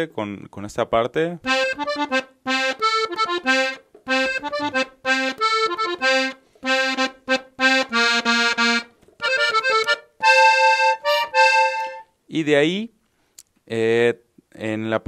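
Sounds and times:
button accordion melody: 1.5 - 12.2.

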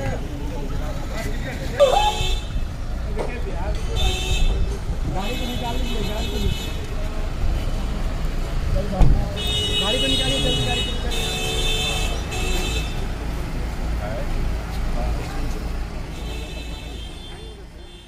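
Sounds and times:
traffic engine rumble: 0.0 - 18.0
voices: 0.0 - 18.0
vehicle horns blasting: 3.8 - 6.9, 9.3 - 13.2, 16.1 - 18.0.

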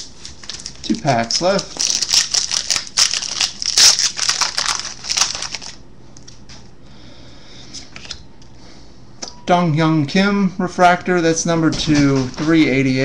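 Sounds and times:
foil wrapper crinkling and tearing: 0.0 - 5.8.

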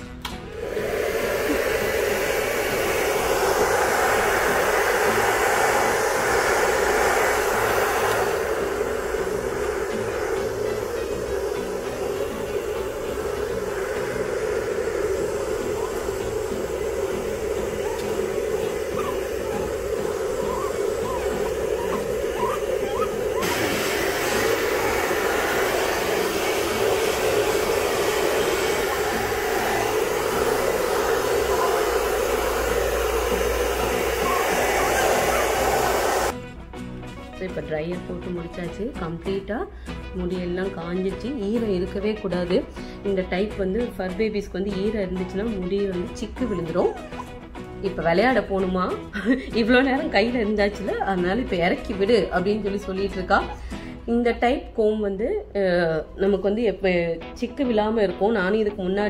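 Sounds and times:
hair dryer running: 0.0 - 36.4, 41.4 - 54.1.

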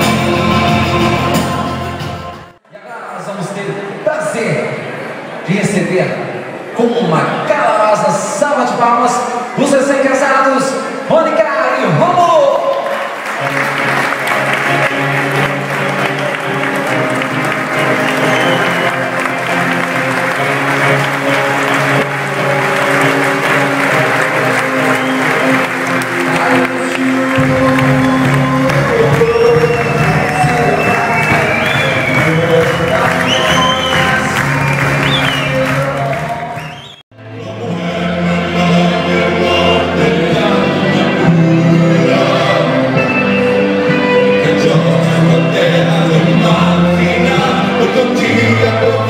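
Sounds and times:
music: 0.0 - 2.6, 10.6 - 49.0
guests applauding: 12.4 - 37.0
deep bass line: 14.5 - 36.4.

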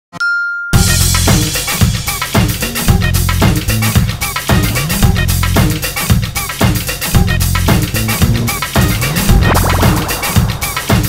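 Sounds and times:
high ding: 0.2 - 0.8
intro music with bass and drums: 0.8 - 11.0.

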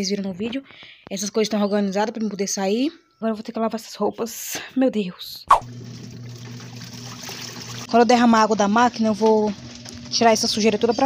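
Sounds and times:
low motor hum: 5.6 - 11.0
water swishing in washing machine: 5.6 - 11.0.

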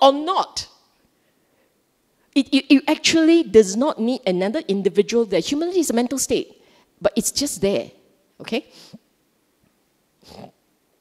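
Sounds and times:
breath into microphone: 6.6 - 7.0, 8.7 - 9.1.

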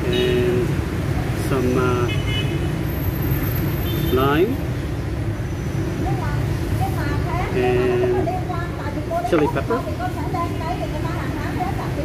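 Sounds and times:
street traffic engine rumble: 0.0 - 12.0.

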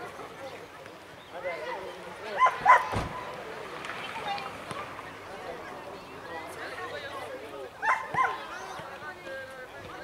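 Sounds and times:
faint voices: 0.0 - 10.0
dog barking: 2.4 - 2.9, 7.8 - 8.4.

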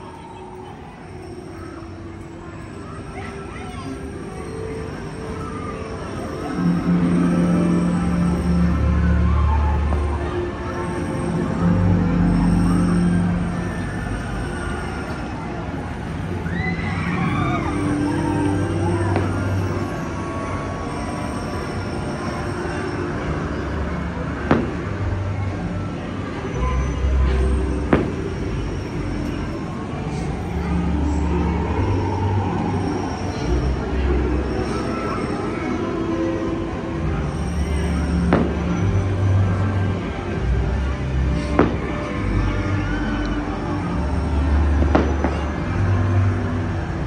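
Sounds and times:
faint soundtrack music: 0.0 - 47.0
fireworks rumbling: 18.0 - 20.0, 24.5 - 25.1, 27.4 - 29.4, 38.3 - 39.0, 41.4 - 42.4, 44.8 - 45.4.

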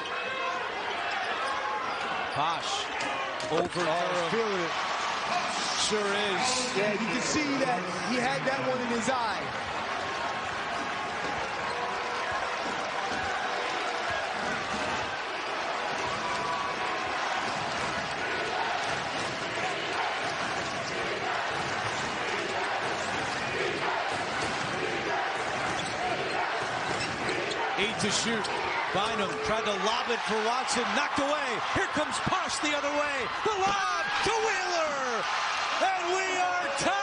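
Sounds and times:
arena crowd noise: 0.0 - 37.0.

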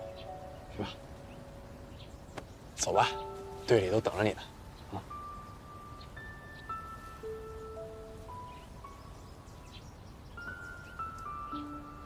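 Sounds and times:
slow melody of held notes: 0.0 - 12.0.

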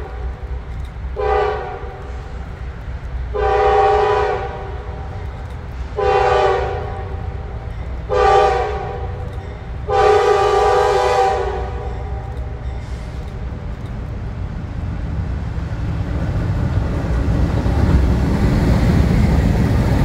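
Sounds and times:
locomotive air horn blasts: 1.2 - 2.4, 3.3 - 5.2, 5.9 - 7.5, 8.1 - 9.2, 9.8 - 12.3.

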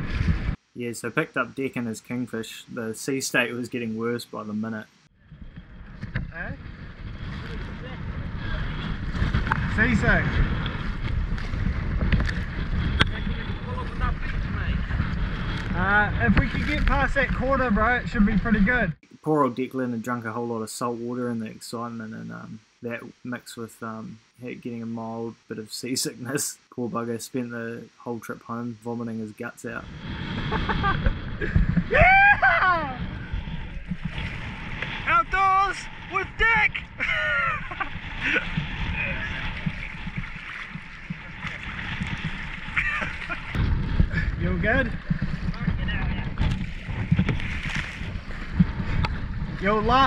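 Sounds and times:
wind buffeting microphone: 0.0 - 0.7, 5.2 - 19.0, 29.8 - 50.0
rough sea splashing: 5.4 - 17.7, 29.8 - 50.0
sea water sloshing and splashing: 33.2 - 35.1, 37.8 - 44.1, 44.9 - 49.6.

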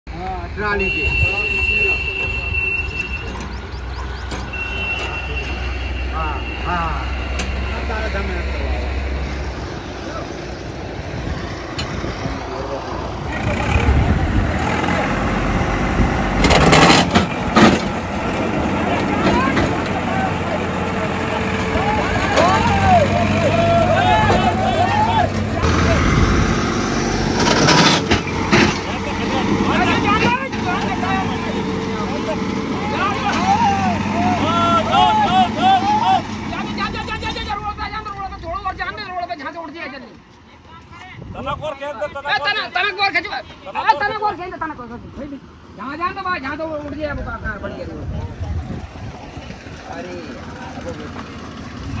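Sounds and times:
diesel tractor engine running: 2.4 - 39.4, 47.5 - 52.0
men shouting: 18.7 - 26.2, 29.0 - 39.6.

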